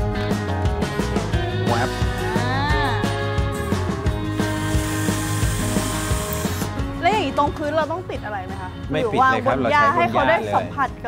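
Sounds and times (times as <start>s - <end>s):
background music with steady beat: 0.0s - 11.0s
cordless drill driving into wood: 4.4s - 6.8s.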